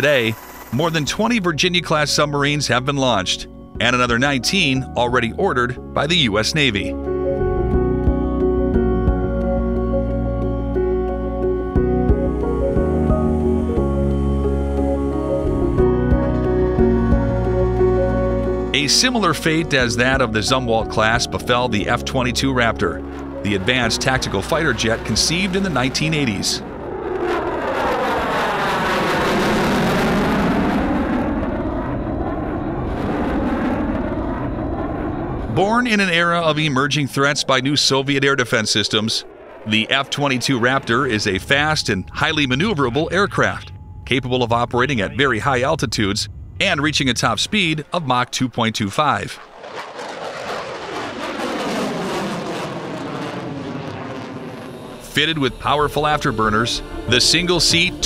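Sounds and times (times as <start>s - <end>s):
fighter jet low pass: 6.6s - 58.0s.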